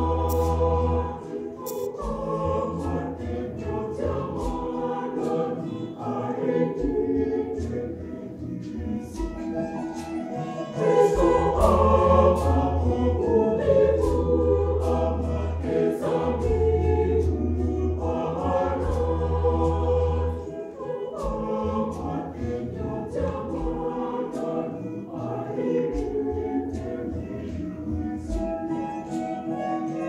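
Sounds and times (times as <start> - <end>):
mixed choir singing: 0.0 - 30.0.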